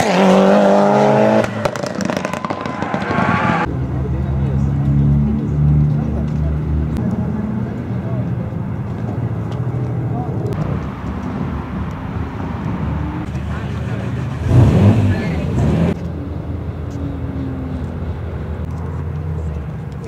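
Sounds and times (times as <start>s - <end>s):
car engines running: 0.0s - 20.0s.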